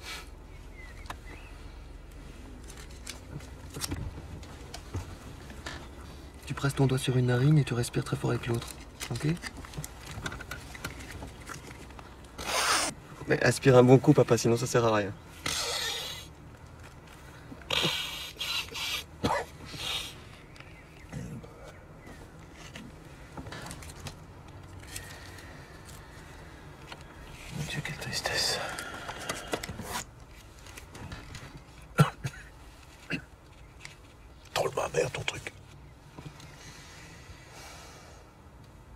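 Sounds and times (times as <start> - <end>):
man sniffing hard: 17.7 - 20.2
man snorting through nose: 17.7 - 20.2
man coughing: 19.2 - 19.6, 31.9 - 32.5.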